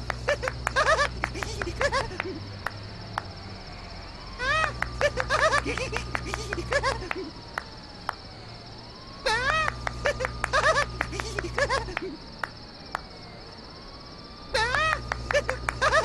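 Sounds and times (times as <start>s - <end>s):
hands clapping: 0.0s - 3.3s, 4.7s - 8.2s, 9.6s - 13.1s, 14.9s - 15.9s
crickets chirping: 0.0s - 16.0s
low electric hum: 0.0s - 16.0s
cartoon boy giggling: 0.2s - 2.5s, 4.4s - 7.4s, 9.3s - 12.3s, 14.6s - 16.0s.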